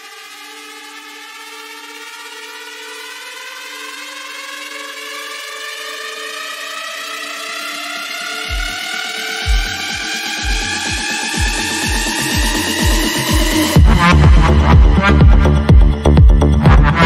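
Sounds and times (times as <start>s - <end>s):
synth riser climbing in pitch: 0.0s - 17.0s
held low synth notes: 7.5s - 17.0s.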